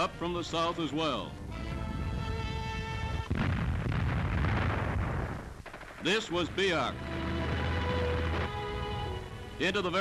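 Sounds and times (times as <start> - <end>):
gunfire and shell bursts: 5.6 - 8.5.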